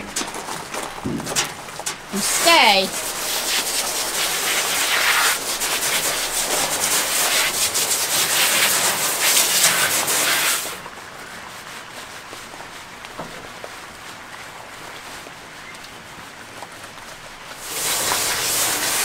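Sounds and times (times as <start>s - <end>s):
water spraying from hose nozzle: 2.0s - 10.8s, 17.5s - 19.0s.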